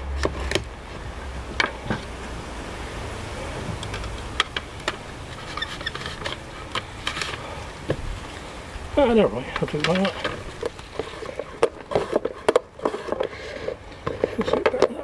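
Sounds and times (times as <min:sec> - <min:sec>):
taps and knocks of handling: 0:09.6 - 0:15.0.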